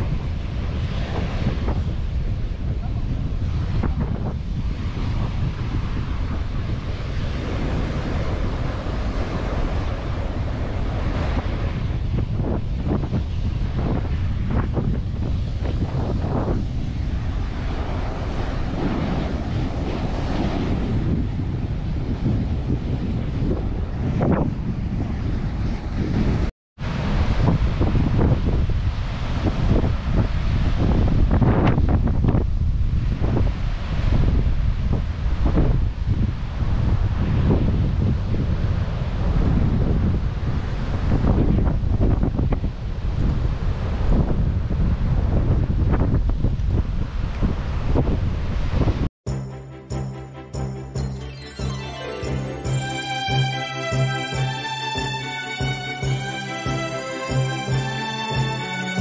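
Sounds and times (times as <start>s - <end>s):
surf washing onto beach: 0.0s - 23.2s
wind buffeting microphone: 0.0s - 49.1s.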